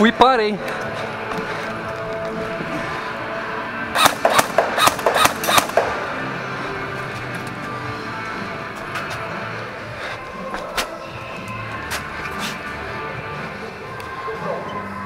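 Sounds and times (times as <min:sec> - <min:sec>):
background music: 0:00.0 - 0:15.0
airsoft pistol shots: 0:04.0 - 0:06.2.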